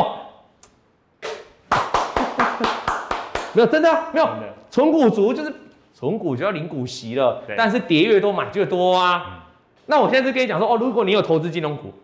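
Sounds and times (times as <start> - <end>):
hands clapping: 1.2 - 3.8.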